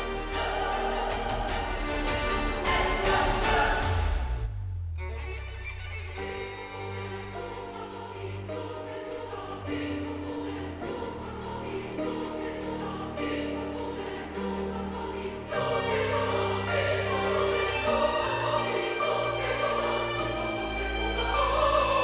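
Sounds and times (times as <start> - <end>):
choir singing held chords: 0.0 - 4.5, 7.0 - 22.0
orchestral accompaniment: 0.0 - 22.0.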